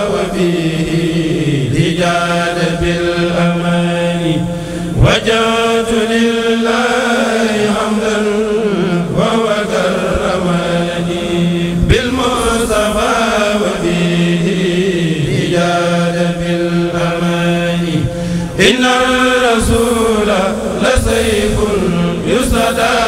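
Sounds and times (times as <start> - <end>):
men's chorus chanting in unison: 0.0 - 23.0.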